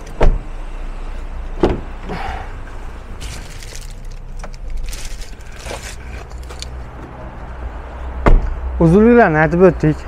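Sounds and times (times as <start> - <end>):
car door shutting: 0.1 - 0.5, 1.6 - 2.4, 8.2 - 8.6
clicks and rustles: 3.2 - 6.8.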